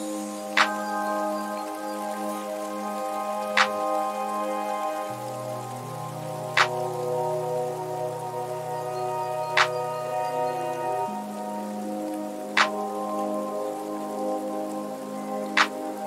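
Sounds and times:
sustained synth chords: 0.0s - 16.0s.

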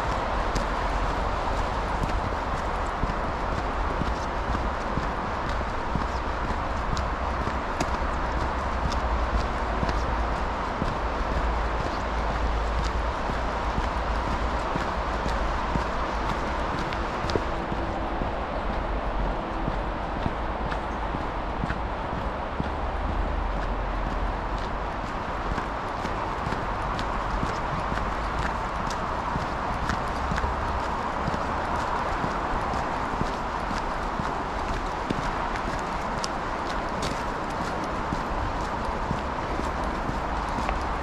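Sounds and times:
footsteps on icy snow: 0.0s - 41.0s
steady background noise: 0.0s - 41.0s
steady background rumble: 0.0s - 41.0s.

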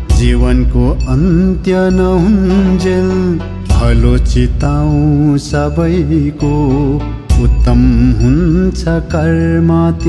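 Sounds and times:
instrumental backing: 0.0s - 10.0s
person singing: 0.0s - 10.0s.

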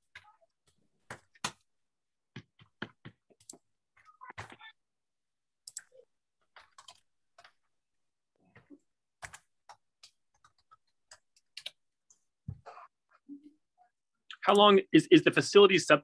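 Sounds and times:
computer keyboard keystrokes: 6.6s - 7.0s, 9.2s - 11.8s.

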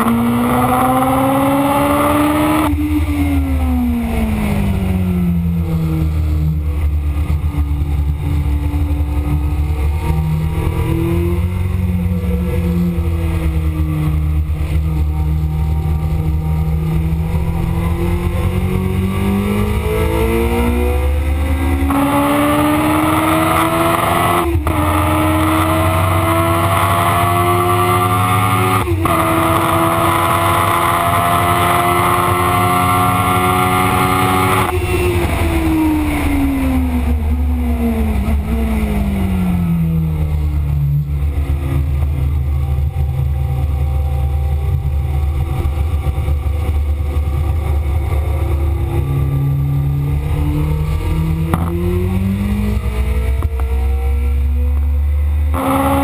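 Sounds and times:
motorcycle engine accelerating: 0.0s - 56.0s.

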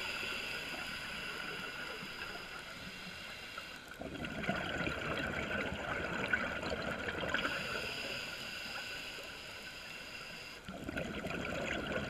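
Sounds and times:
underwater bubbles gurgling: 0.0s - 12.0s.

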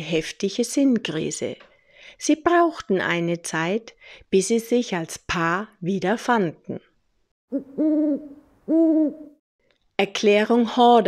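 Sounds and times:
owl hooting: 7.5s - 9.4s.

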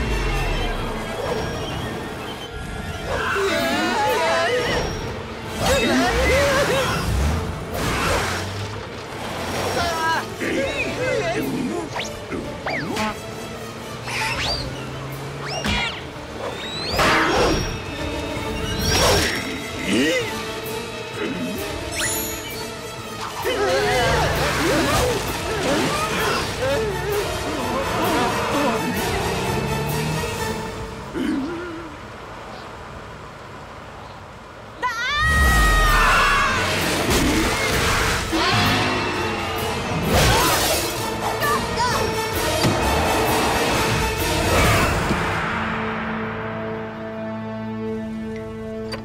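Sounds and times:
high squealing glides: 0.0s - 7.1s, 13.9s - 19.7s
dramatic cartoon chase music: 0.0s - 8.6s, 9.4s - 31.4s, 35.0s - 49.0s.

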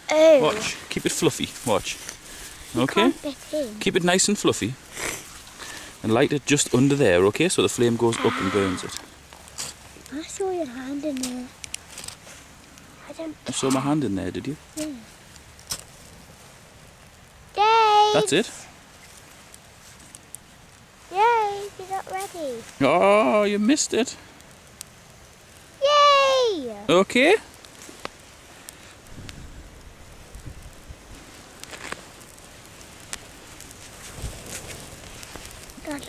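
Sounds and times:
dry grass crackling and popping: 0.0s - 36.0s
soft rustling: 0.2s - 8.0s, 18.6s - 22.8s, 27.4s - 36.0s
striker scraping fire steel: 9.3s - 9.9s, 31.2s - 36.0s.

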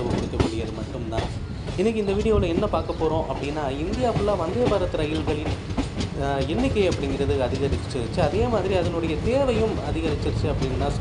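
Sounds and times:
train rumbling on tracks: 0.0s - 11.0s
wheels clicking over rail joints: 0.0s - 11.0s.

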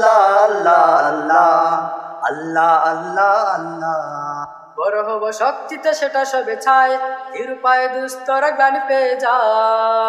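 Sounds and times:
men singing devotional chant: 0.0s - 4.5s.

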